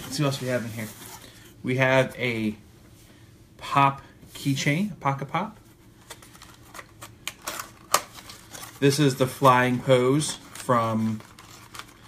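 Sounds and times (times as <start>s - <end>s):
cardboard package clicks and crinkles: 6.0s - 12.0s.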